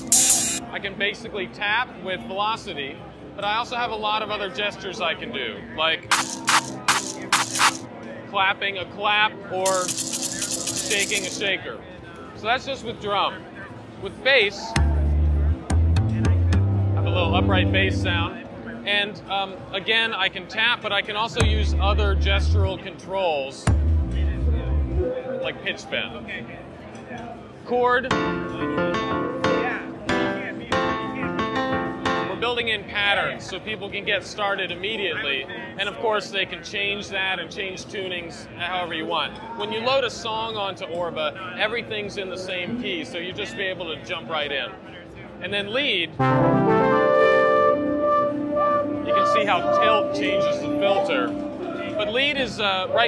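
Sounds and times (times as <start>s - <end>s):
electronic clap and shaker hits: 0.0s - 0.6s, 6.1s - 7.9s, 9.7s - 11.5s
synth chords ringing: 15.0s - 18.4s, 46.2s - 52.2s.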